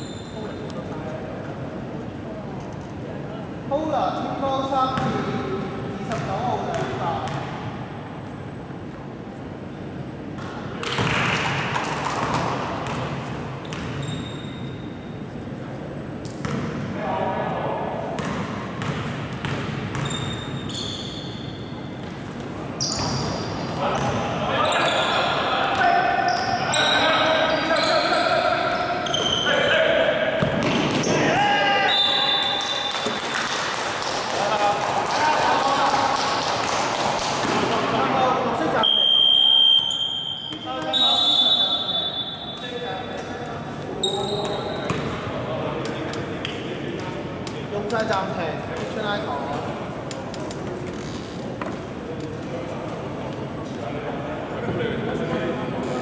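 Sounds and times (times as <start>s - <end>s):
basketball bouncing on court: 16.4s - 16.7s, 18.2s - 20.4s, 30.4s - 31.1s
players talking and calling out: 22.6s - 33.1s, 37.4s - 56.0s
shrill whistle blast: 31.8s - 33.1s, 38.8s - 42.7s.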